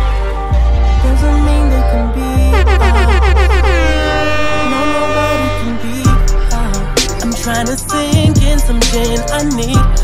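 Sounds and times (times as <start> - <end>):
heavy bass: 0.0 - 10.0
hip-hop beat: 0.2 - 10.0
air horn effect blasts: 2.5 - 8.0.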